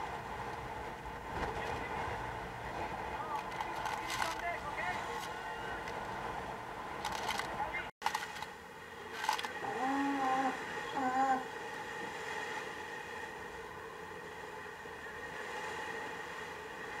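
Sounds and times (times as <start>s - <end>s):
wavering pitched calls: 9.6s - 11.5s.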